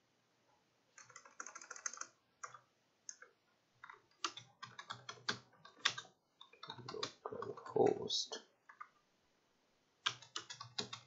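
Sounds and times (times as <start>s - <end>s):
computer keyboard typing: 1.0s - 7.9s, 10.0s - 11.0s.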